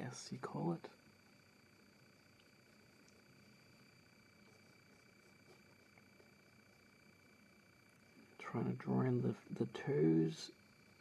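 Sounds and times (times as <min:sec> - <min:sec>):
high-pitched hum: 0:00.0 - 0:11.0.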